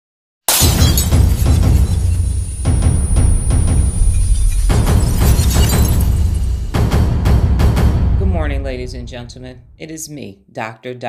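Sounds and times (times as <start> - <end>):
glass shattering: 0.5 - 6.8
deep bass intro music: 1.0 - 9.8.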